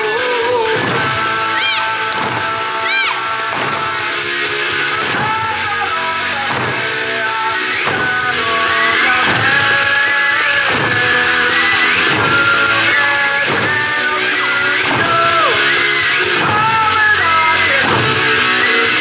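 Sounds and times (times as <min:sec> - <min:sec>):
dance music with singing: 0:00.0 - 0:19.0
barrel drums struck: 0:00.8 - 0:02.7, 0:06.4 - 0:07.1, 0:07.8 - 0:14.2, 0:14.8 - 0:15.6.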